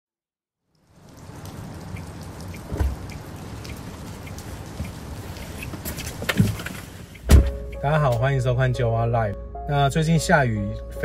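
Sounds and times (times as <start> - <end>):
rain on a car roof: 0.6 - 8.3
raindrops ticking: 0.6 - 8.7
dull thump: 2.7 - 3.0, 5.8 - 7.6.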